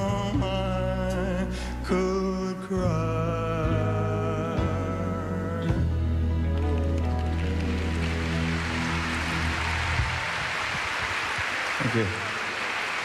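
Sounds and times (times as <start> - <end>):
audience applause: 6.5 - 13.0.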